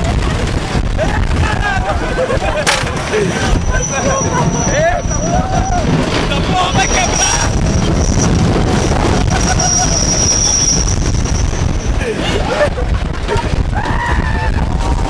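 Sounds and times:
roller coaster train rumble: 0.0s - 15.0s
wind on microphone: 0.0s - 15.0s
riders yelling and whooping: 1.0s - 8.2s, 9.0s - 15.0s
thin high squeal: 2.6s - 8.4s, 9.3s - 12.0s.

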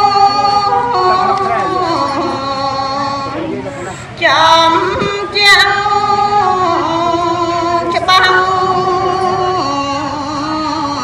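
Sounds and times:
woman chanting verse: 0.0s - 11.0s.

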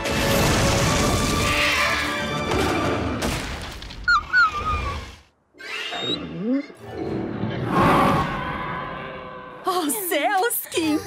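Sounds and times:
background music: 6.2s - 11.0s.

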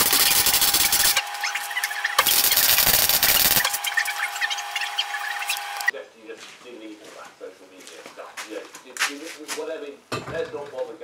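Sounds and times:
arc welding crackling: 0.0s - 5.9s
steady hum: 0.0s - 5.9s.

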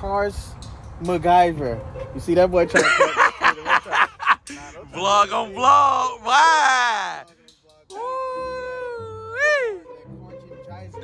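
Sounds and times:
high-pitched wailing voice: 8.0s - 9.9s.

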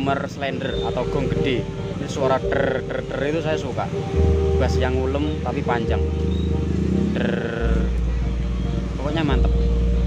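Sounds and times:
low sub-bass notes: 0.0s - 10.0s.

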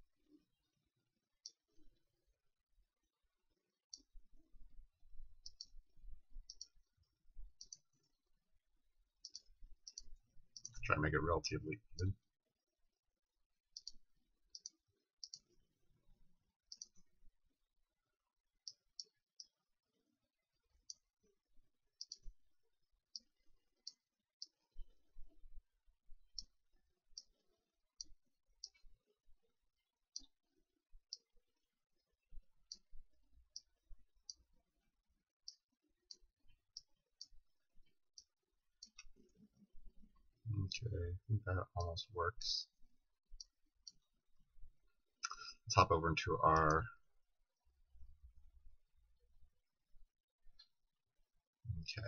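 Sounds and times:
computer mouse clicking: 5.4s - 5.8s, 6.4s - 6.8s, 9.2s - 10.8s, 13.7s - 14.0s, 14.6s - 15.6s, 16.7s - 17.0s, 22.0s - 22.3s, 28.0s - 28.8s, 38.1s - 39.3s.

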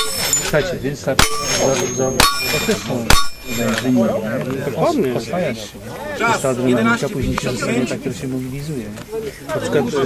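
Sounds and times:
bullet clanging on steel target: 0.0s - 4.1s.

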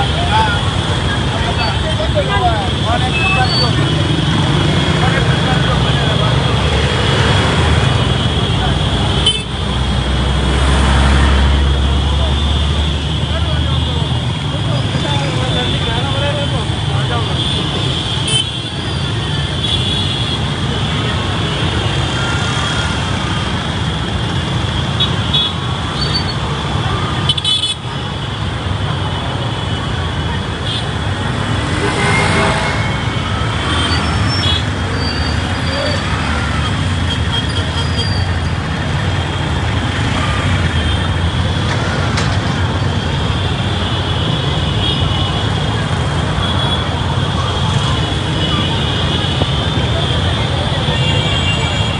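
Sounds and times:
many voices: 0.0s - 18.2s, 38.8s - 51.9s
horns tooting: 28.9s - 41.7s.

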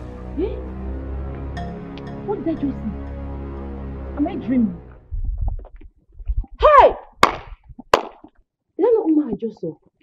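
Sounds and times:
sharp cracks: 7.1s - 8.4s.

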